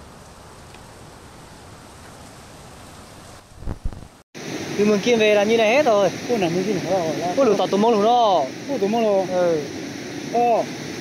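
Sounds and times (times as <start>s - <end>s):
river rushing: 4.4s - 11.0s.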